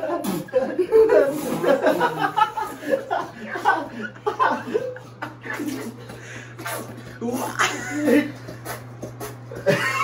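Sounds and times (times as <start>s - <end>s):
steady low hum: 0.0s - 10.0s
young men laughing: 0.0s - 10.0s.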